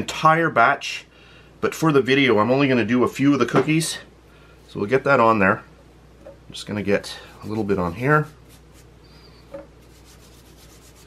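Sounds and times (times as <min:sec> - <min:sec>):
hands rubbing dough on stone: 0:07.3 - 0:08.9, 0:09.8 - 0:11.0.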